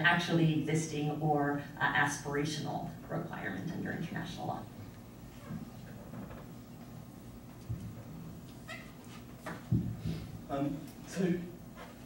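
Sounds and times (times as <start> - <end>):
soft microphone bump: 8.8 - 10.5.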